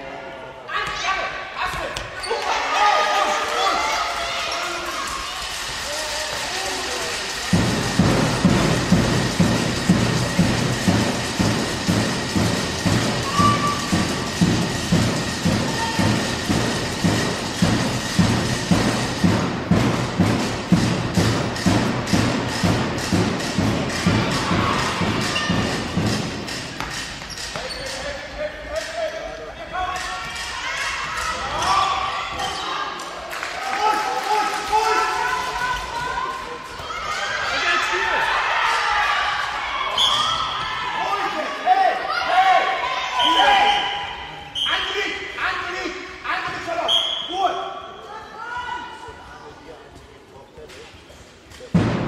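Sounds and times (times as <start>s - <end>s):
rhythmic clapping: 3.4s - 29.0s
drum beaten in a hall: 6.0s - 27.6s, 51.7s - 52.0s
voices shouting: 12.9s - 17.2s, 23.8s - 26.5s, 29.6s - 45.3s.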